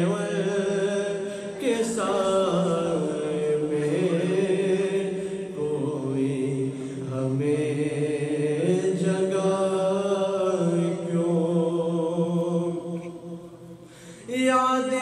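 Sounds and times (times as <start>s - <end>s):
man singing unaccompanied: 0.0s - 13.4s, 14.3s - 15.0s.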